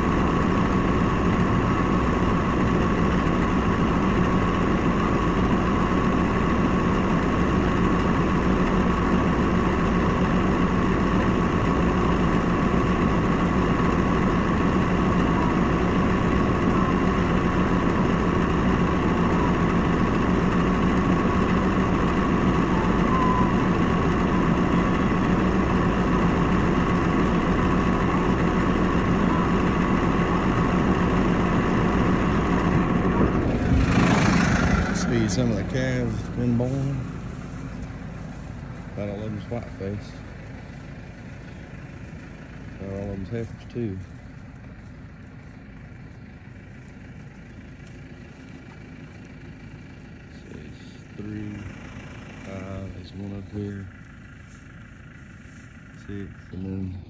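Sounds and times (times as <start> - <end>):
tractor diesel engine idling: 0.0 - 57.0.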